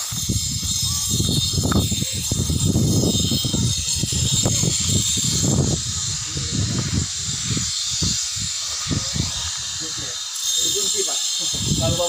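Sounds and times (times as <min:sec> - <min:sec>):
steady high hiss: 0:00.0 - 0:12.0.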